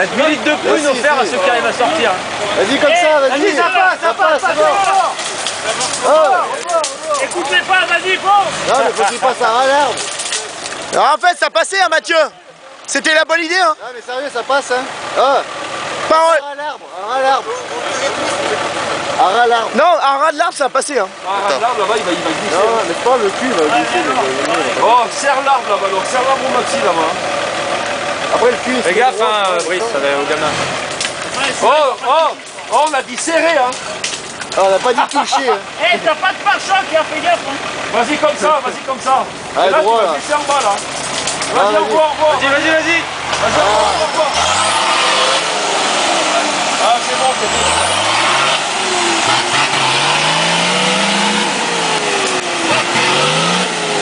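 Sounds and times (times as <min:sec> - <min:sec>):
off-road vehicle engine in mud: 0:00.0 - 0:54.0.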